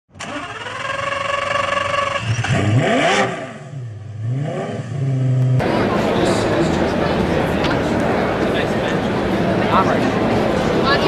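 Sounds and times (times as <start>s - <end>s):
engine-like whine: 0.2s - 11.0s.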